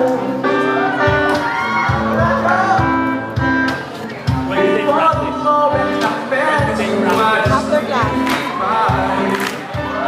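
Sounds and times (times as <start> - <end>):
acoustic guitar: 0.0 - 10.0
people singing: 4.9 - 10.0.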